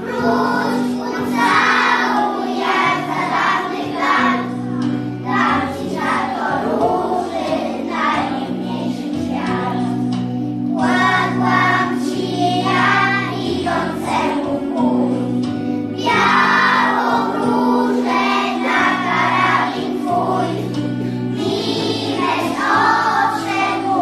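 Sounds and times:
children singing in unison: 0:00.0 - 0:15.2, 0:15.9 - 0:24.0
instrumental accompaniment: 0:00.0 - 0:24.0.

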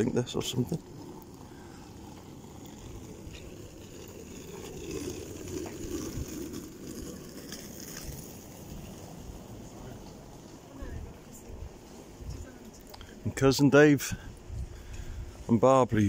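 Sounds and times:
outdoor street noise: 0:00.0 - 0:16.0.

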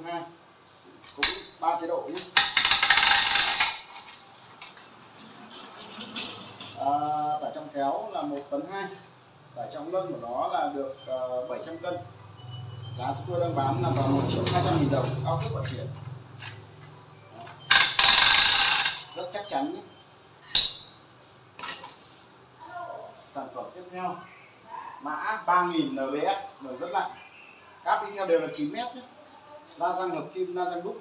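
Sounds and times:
winch ratchet rattling: 0:02.2 - 0:04.8, 0:17.7 - 0:19.2.

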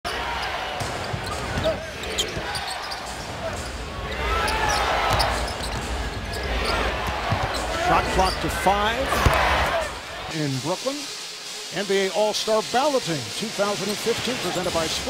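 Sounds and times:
crowd noise: 0:00.1 - 0:15.0
basketball bouncing on court: 0:00.8 - 0:02.6.

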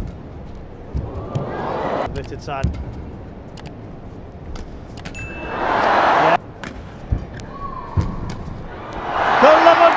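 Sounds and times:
arena crowd hum: 0:00.9 - 0:02.1, 0:05.2 - 0:06.6, 0:07.5 - 0:09.9.

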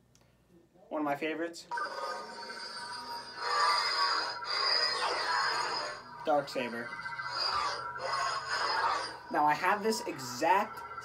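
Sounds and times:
lightsaber electronic hum: 0:01.7 - 0:11.0.

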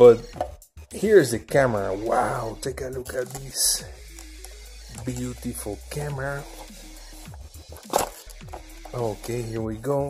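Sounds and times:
faint background music: 0:00.0 - 0:10.0
box handling noise: 0:07.7 - 0:09.4.

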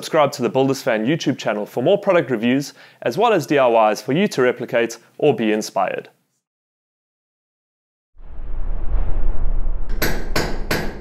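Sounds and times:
low rumble: 0:08.2 - 0:11.0
ringing hammer strikes: 0:10.0 - 0:11.0.

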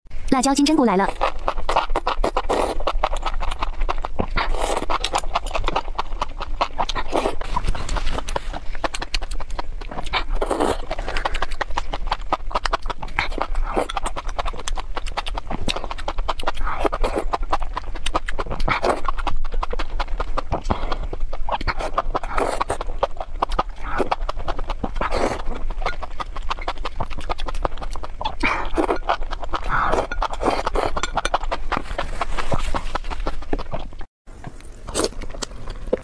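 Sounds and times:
wet chewing and lip-smacking: 0:00.4 - 0:36.0
slurping noodles: 0:01.2 - 0:33.9.

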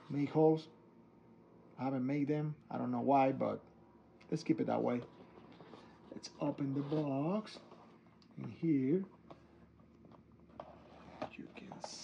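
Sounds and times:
hands handling cardboard box: 0:09.2 - 0:12.0.

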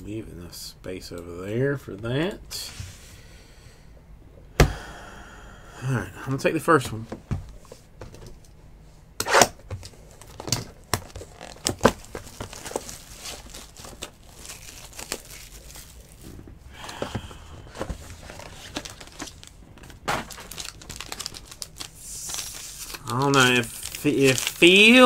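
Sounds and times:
shrink wrap crackling: 0:10.0 - 0:16.9, 0:18.1 - 0:25.0
plastic shrink wrap tearing: 0:10.2 - 0:16.4, 0:18.2 - 0:25.0.

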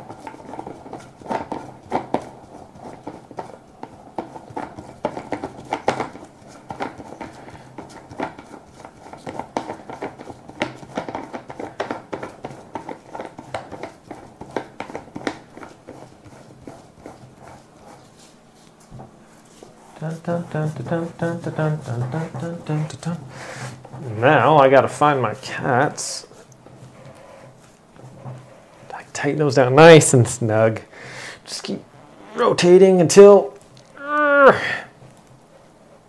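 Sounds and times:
rope scratching post rustling: 0:00.0 - 0:15.0, 0:15.6 - 0:29.9.

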